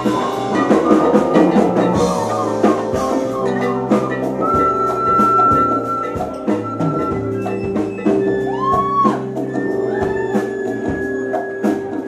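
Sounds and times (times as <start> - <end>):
congas and drums: 0.0 - 12.0
salsa band playing: 0.0 - 12.0.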